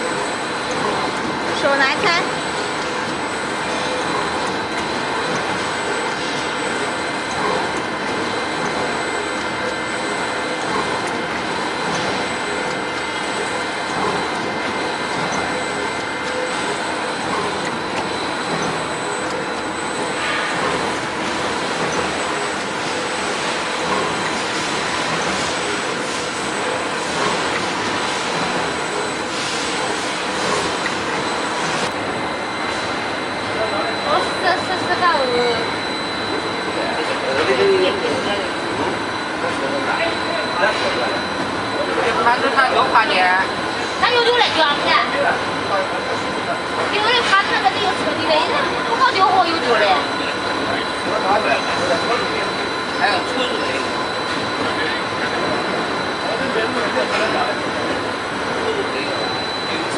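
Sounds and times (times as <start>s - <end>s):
rollers and conveyor running: 0.0s - 59.9s
thin high whine: 8.3s - 59.9s.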